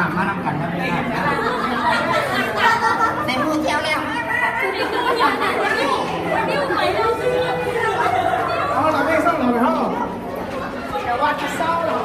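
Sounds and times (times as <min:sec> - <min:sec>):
chatter of adults and children: 0:00.0 - 0:12.0.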